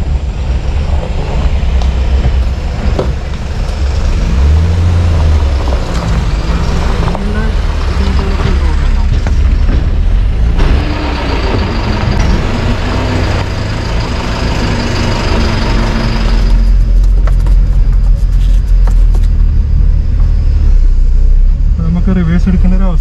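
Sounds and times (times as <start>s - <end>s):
diesel truck engine rumbling: 0.0s - 23.0s.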